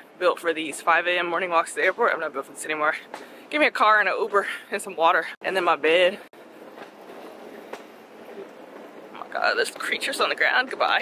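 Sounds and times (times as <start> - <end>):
distant traffic hum: 0.0 - 11.0.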